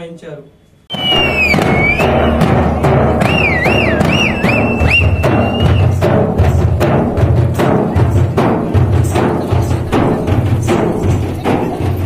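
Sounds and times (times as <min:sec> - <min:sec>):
high shrill swooping tone: 0:00.9 - 0:06.0
frame drums beaten with sticks: 0:00.9 - 0:12.0.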